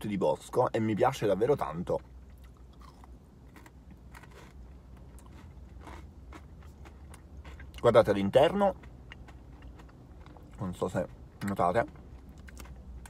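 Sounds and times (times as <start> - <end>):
crunching wafer bar: 2.3 - 7.9.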